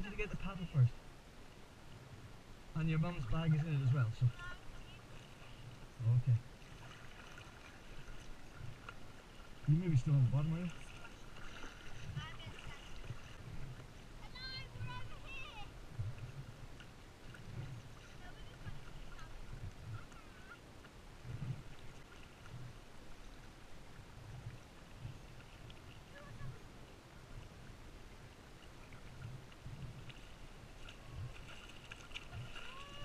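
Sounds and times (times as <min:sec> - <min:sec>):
water slapping kayak hull: 0:02.8 - 0:33.0
kayak paddle strokes: 0:04.3 - 0:33.0.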